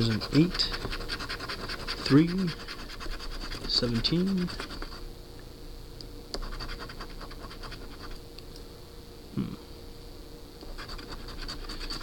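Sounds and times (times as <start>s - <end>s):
coin scratching lottery ticket: 0.0s - 5.0s, 6.4s - 8.2s, 10.7s - 12.0s.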